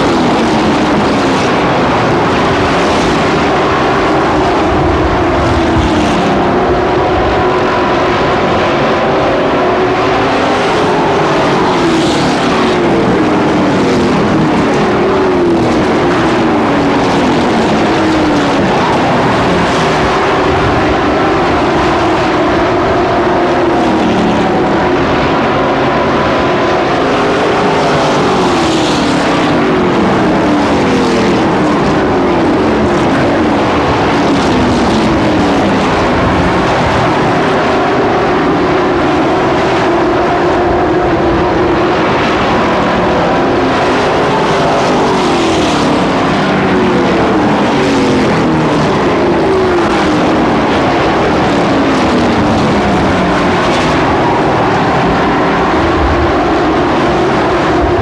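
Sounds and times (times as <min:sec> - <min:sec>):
racing truck engines passing: 0:00.0 - 0:58.0.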